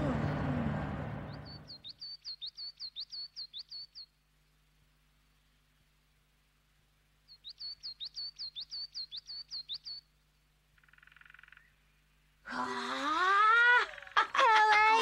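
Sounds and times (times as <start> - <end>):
small bird chirping: 1.2 - 4.2, 7.2 - 12.0
children exclaiming: 12.6 - 15.0.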